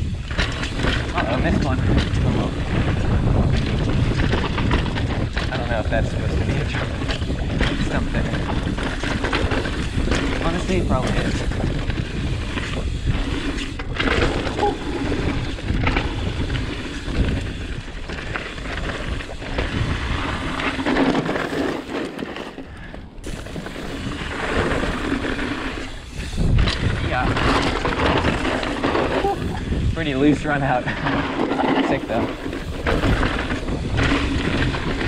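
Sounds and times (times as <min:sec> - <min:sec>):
wind buffeting microphone: 0:00.0 - 0:21.6, 0:22.5 - 0:35.0
bike knocking and rattling: 0:00.0 - 0:35.0
bike tyres crunching over stones: 0:00.0 - 0:35.0.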